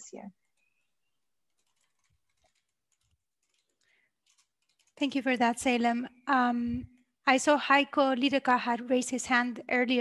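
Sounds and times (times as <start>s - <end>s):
computer keyboard typing clicks: 1.5s - 5.2s.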